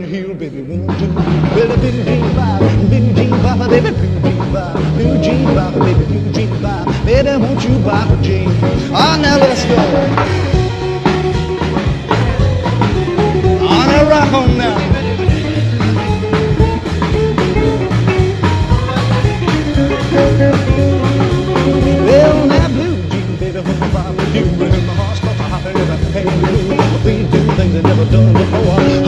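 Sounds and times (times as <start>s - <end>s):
bass guitar: 0.0s - 29.0s
drum kit beat: 0.0s - 29.0s
rockabilly band instrumental: 0.0s - 29.0s
electric guitar: 0.9s - 29.0s.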